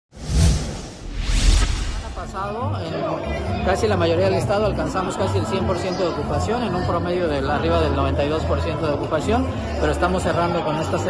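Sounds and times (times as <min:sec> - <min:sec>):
whooshes: 0:00.1 - 0:02.5
deep low boom: 0:00.3 - 0:02.5.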